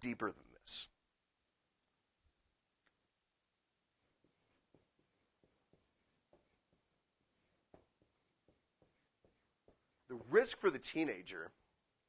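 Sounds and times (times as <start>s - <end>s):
marker squeaking on whiteboard: 4.0s - 10.5s.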